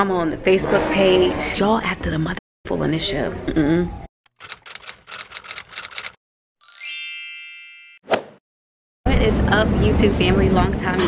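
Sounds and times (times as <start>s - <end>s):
sharp typing clicks: 4.3s - 6.2s
bright upward sweeping chime: 6.6s - 8.0s.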